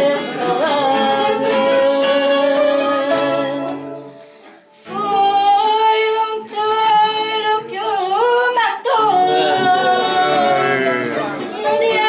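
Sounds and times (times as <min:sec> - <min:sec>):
woman singing: 0:00.0 - 0:03.9, 0:04.9 - 0:12.0
acoustic guitar: 0:00.0 - 0:12.0
singer breath: 0:04.1 - 0:05.0.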